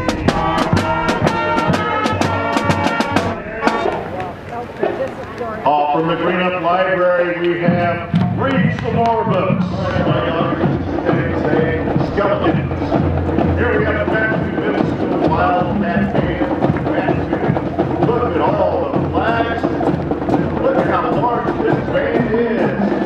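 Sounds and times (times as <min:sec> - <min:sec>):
crowd voices: 0:00.0 - 0:23.0
marching band playing: 0:00.0 - 0:23.0.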